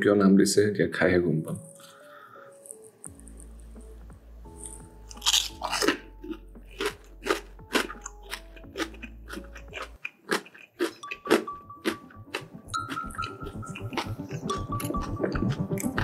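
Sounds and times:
crunchy fried food chewing: 4.5s - 16.0s.

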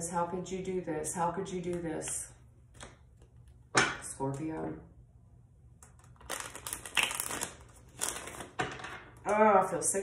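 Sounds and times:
cards being shuffled: 5.8s - 8.8s.

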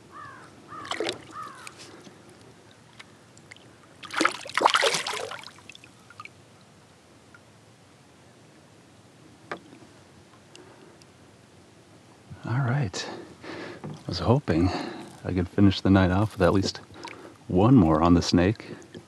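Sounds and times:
short bird calls: 0.0s - 1.8s
fish splashing into water: 0.7s - 1.8s, 3.4s - 6.3s.

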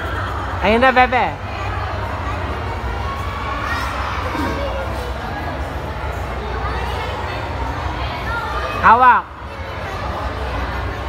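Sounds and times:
children shouting and chattering: 0.0s - 11.0s.

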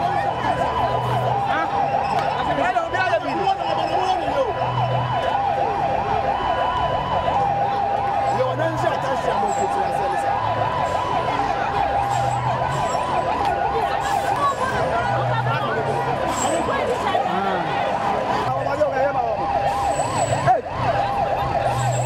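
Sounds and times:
low drone of vehicles: 0.0s - 22.0s
police siren yelp: 0.0s - 22.0s
second steady siren tone: 0.0s - 22.0s.

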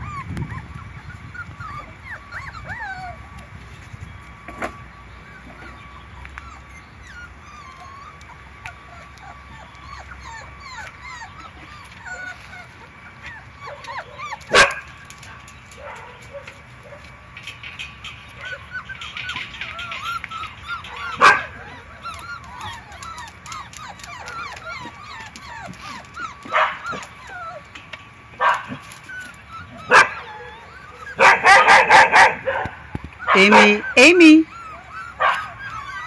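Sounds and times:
puppies whimpering and yipping: 0.0s - 36.0s.

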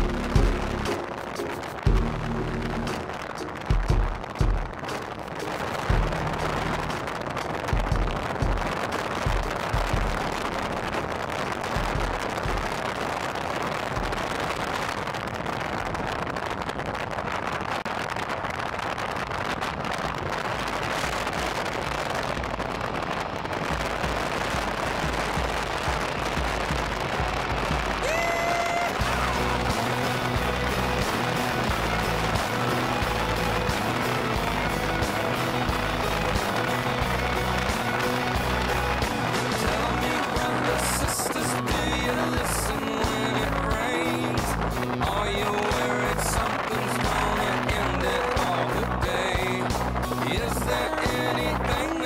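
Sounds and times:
wind rushing: 20.6s - 52.0s.

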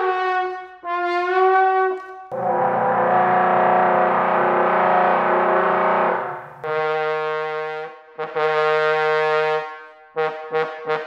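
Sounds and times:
clean steady note: 2.3s - 6.9s
glass trombone buzzing tone: 2.3s - 7.1s.

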